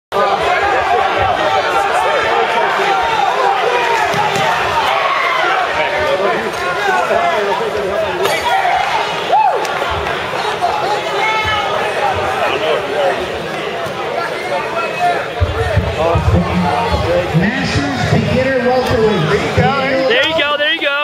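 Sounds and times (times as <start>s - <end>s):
crowd chattering: 0.1s - 21.0s.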